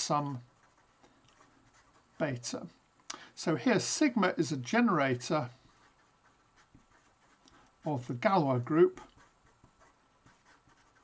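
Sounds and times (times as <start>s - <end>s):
marker writing on paper: 0.0s - 2.8s, 3.6s - 11.0s.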